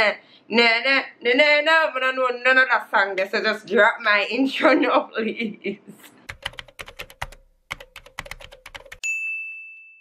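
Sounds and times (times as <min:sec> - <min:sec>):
keystroke clicks: 0:06.3 - 0:09.0
bell ding: 0:09.0 - 0:10.0.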